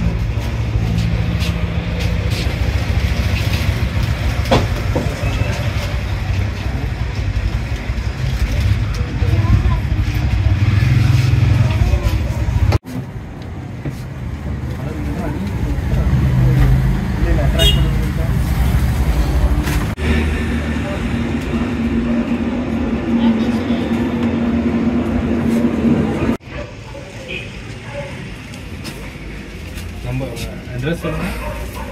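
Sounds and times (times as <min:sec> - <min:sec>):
road traffic: 0:00.0 - 0:31.9
people talking: 0:08.4 - 0:10.4, 0:20.6 - 0:24.4.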